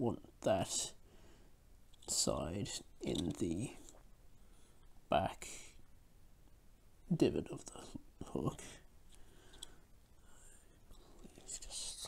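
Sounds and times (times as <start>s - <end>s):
faint breathy whisper: 7.6s - 12.0s.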